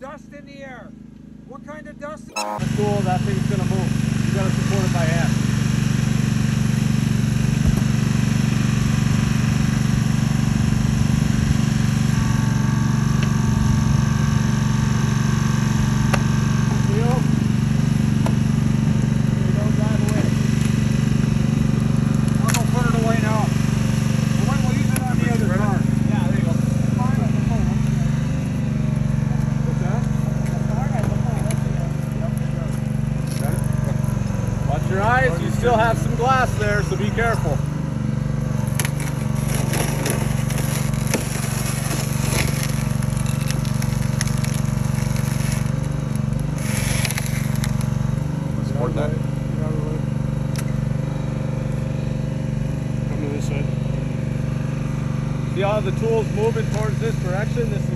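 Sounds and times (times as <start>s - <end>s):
small engine running: 0.1s - 57.9s.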